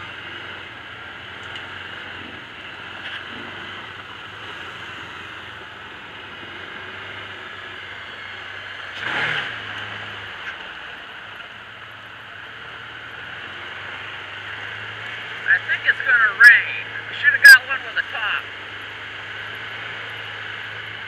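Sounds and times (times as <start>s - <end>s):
engine running at low speed: 0.0s - 21.0s.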